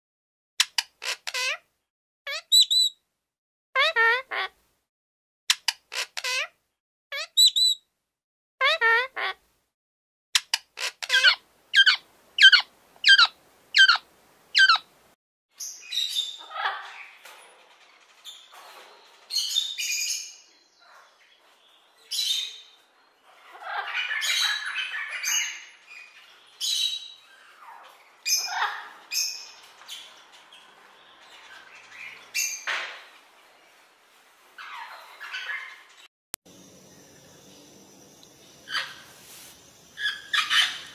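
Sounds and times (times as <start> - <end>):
parrots squawking and chattering: 0.6 - 1.7, 2.3 - 2.9, 3.8 - 4.6, 5.5 - 6.6, 7.2 - 7.8, 8.6 - 9.4, 10.4 - 14.9, 15.6 - 33.8, 34.6 - 36.1, 38.6 - 39.4, 40.0 - 40.9
parrots ringing calls: 1.0 - 1.6, 10.8 - 14.0, 14.6 - 14.8, 15.7 - 17.2, 22.1 - 32.7, 38.6 - 39.2, 40.0 - 40.9.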